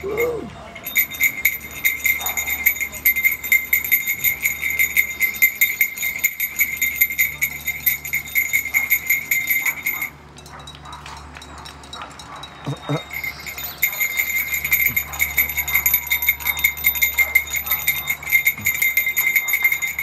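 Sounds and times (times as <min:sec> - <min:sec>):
bell rung rapidly: 0:00.0 - 0:20.0.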